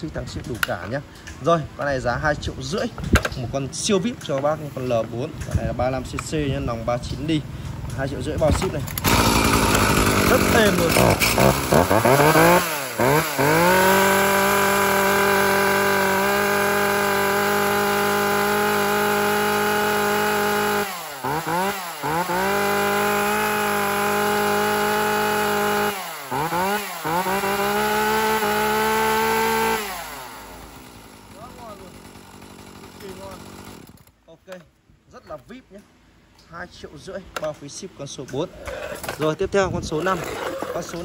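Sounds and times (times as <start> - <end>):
chainsaw revving: 8.6 - 34.2.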